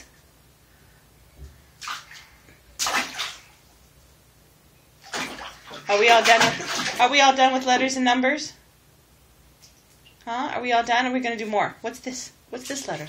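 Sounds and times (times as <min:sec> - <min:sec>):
bathwater splashing: 0:01.7 - 0:03.7, 0:05.0 - 0:07.6.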